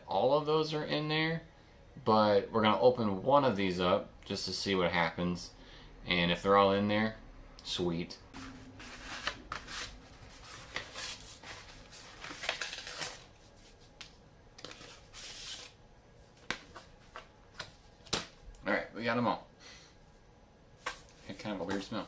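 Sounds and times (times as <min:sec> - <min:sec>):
packaging rustling and crinkling: 0:08.6 - 0:14.0.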